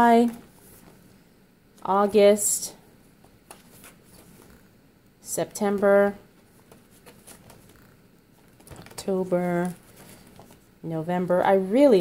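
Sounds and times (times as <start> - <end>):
paper page turning: 6.6 - 7.8.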